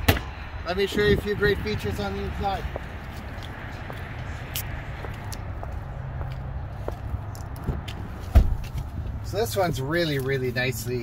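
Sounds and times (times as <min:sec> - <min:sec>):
car door shutting: 0:07.7 - 0:08.9.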